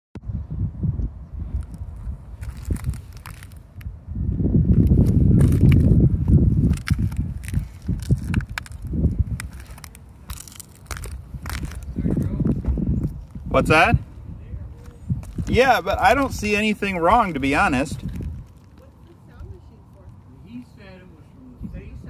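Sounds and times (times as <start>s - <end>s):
shoes crunching on roof shingles: 1.6s - 3.8s, 4.7s - 14.2s, 14.8s - 18.8s
clicks and scrapes: 6.6s - 11.9s.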